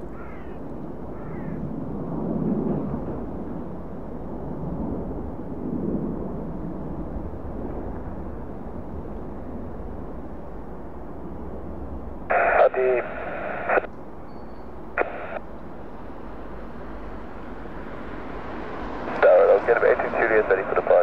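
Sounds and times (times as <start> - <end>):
distant jet aircraft rumble: 0.0 - 21.0
air traffic control radio: 12.3 - 13.9, 14.9 - 15.5, 19.2 - 21.0.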